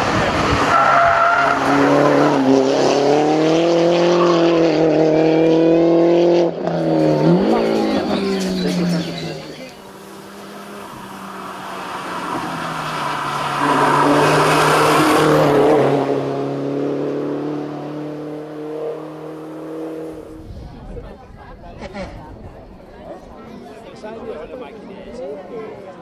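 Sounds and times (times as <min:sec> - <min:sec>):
racing car engine passing by: 0:00.0 - 0:20.5.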